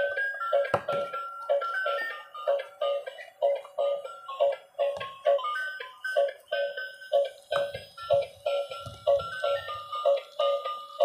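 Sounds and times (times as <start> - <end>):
toy electronic tune with beeping: 0.0 - 11.0.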